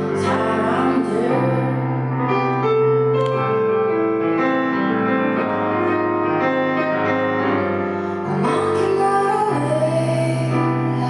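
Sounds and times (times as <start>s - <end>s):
woman singing: 0.0s - 2.0s, 8.3s - 11.0s
digital piano playing: 0.0s - 11.0s.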